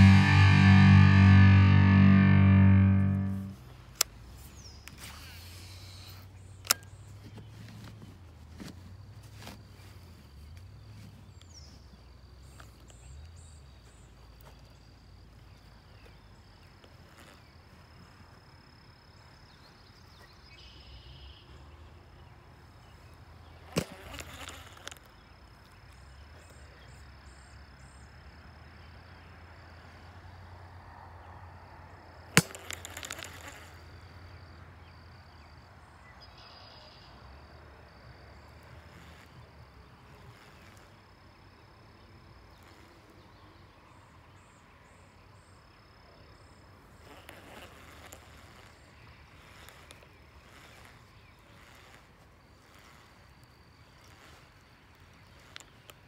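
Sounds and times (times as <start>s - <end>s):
faint bird chirps: 36.1s - 37.4s.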